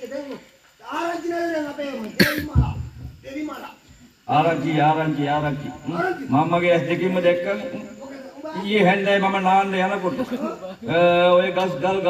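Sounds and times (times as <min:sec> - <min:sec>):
man speaking: 0:00.9 - 0:12.0
loud sharp cough: 0:02.2 - 0:02.7.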